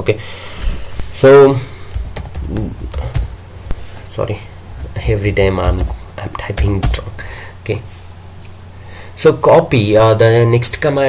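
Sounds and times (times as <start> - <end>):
keyboard keys clicking: 1.9 - 3.3, 4.8 - 6.0.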